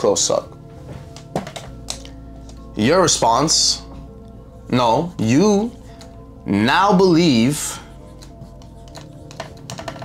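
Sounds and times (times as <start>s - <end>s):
quiet background music: 0.0s - 10.0s
marker writing on a whiteboard: 6.9s - 10.0s.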